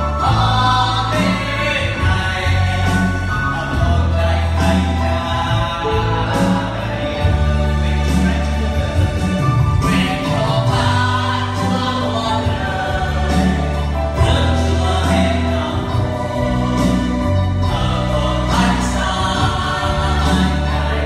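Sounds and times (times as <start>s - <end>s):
electronic keyboard: 0.0s - 21.0s
person singing worship song: 0.0s - 21.0s.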